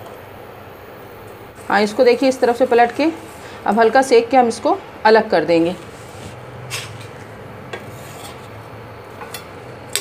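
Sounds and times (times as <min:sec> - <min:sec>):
spoon scraping on pan: 0:07.8 - 0:08.6.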